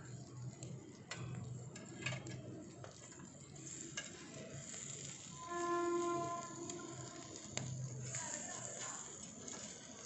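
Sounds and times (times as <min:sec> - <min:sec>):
meat sizzling on a grill: 0:00.0 - 0:10.0
metal tongs clicking on grate: 0:01.1 - 0:03.3, 0:03.9 - 0:04.2.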